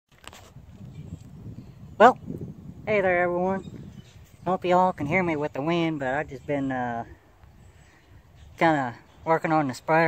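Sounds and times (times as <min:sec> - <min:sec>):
wind buffeting microphone: 0:00.2 - 0:10.0.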